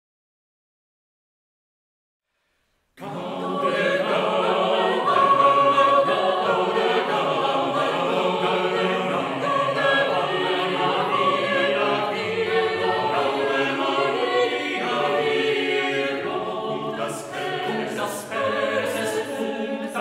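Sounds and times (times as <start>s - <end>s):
choir singing a cappella: 3.0s - 20.0s.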